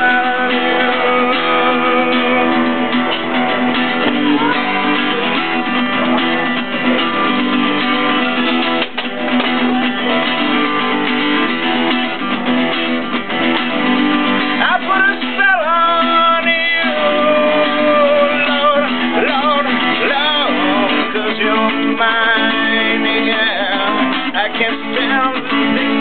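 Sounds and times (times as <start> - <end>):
man singing: 0.0 - 5.4, 14.4 - 26.0
acoustic guitar strummed: 0.0 - 26.0.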